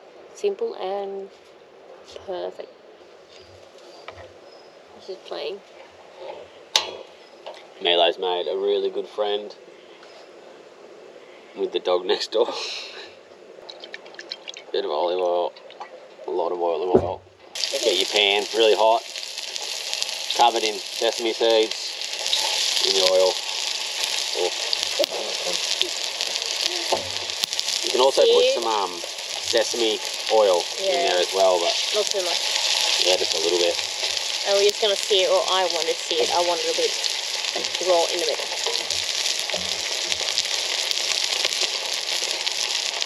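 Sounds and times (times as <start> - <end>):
man talking: 7.8 - 9.6, 11.6 - 12.6, 14.7 - 15.5, 16.3 - 19.0, 20.3 - 22.0, 22.8 - 23.4, 24.3 - 24.6, 27.8 - 32.1, 33.0 - 33.8
fish sizzling in hot oil: 17.6 - 43.0.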